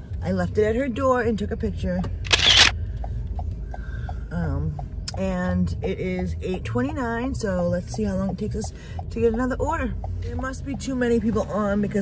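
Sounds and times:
car cabin hum: 0:00.0 - 0:12.0
faint light ticks: 0:02.8 - 0:11.3.

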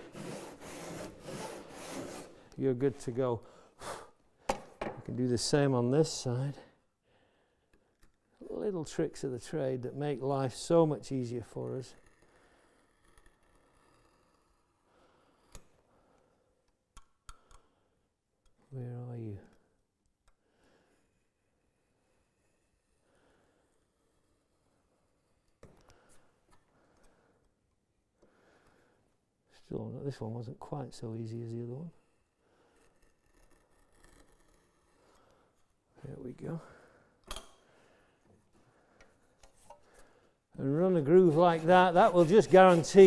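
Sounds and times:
knife scratching wood: 0:00.0 - 0:02.5, 0:32.1 - 0:35.3, 0:40.6 - 0:43.0.

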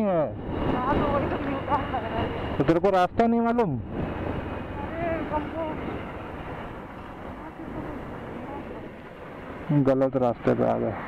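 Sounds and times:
wind on microphone: 0:00.2 - 0:11.0.

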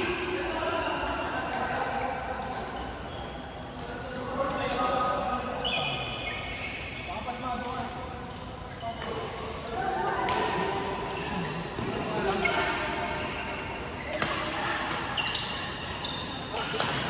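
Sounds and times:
voices in a hall: 0:00.0 - 0:17.0
shoes squeaking on court: 0:02.4 - 0:17.0
racket hitting shuttlecock: 0:10.1 - 0:10.9, 0:11.8 - 0:15.6, 0:16.6 - 0:17.0.

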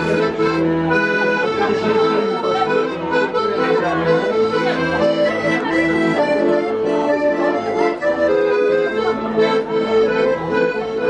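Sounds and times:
accordion dance tune: 0:00.0 - 0:11.0.

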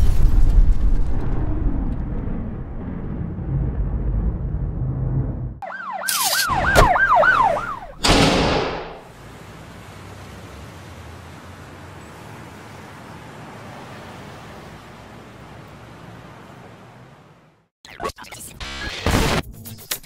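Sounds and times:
low rumble: 0:00.0 - 0:05.6
police siren yelping: 0:05.6 - 0:08.0
loud crash: 0:08.0 - 0:09.0.

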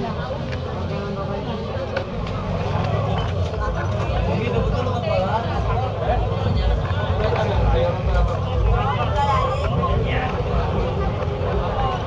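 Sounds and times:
people talking or praying: 0:00.0 - 0:12.0.

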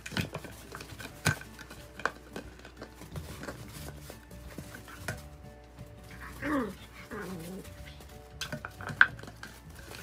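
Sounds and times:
dog grumbling: 0:06.2 - 0:08.0.

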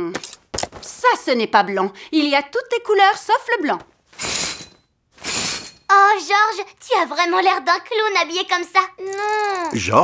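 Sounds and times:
curtain swishing: 0:04.1 - 0:05.8.

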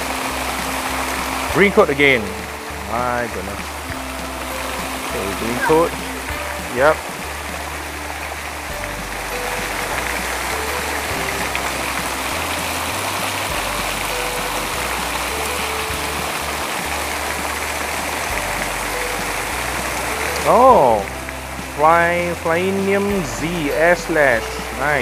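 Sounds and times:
background music bass notes: 0:00.0 - 0:25.0
water pouring and splashing: 0:00.0 - 0:25.0.

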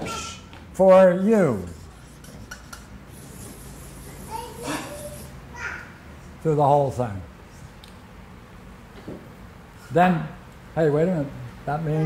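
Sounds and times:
marker rubbing on paper: 0:01.6 - 0:05.4.

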